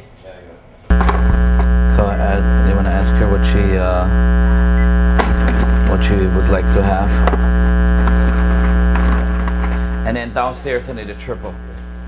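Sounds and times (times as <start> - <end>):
loud electrical hum: 0.9 - 12.0.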